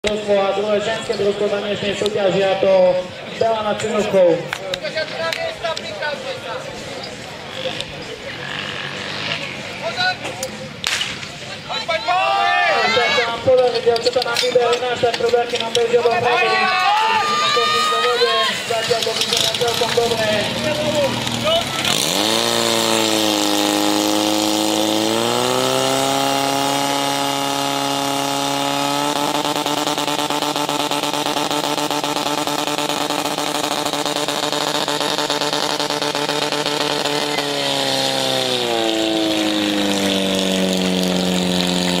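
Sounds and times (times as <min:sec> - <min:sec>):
fire pump engine revving: 0:17.8 - 0:42.0.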